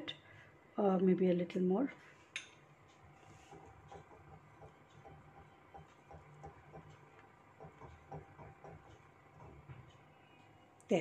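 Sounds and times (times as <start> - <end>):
whisk ticking in saucepan: 2.9 - 10.6.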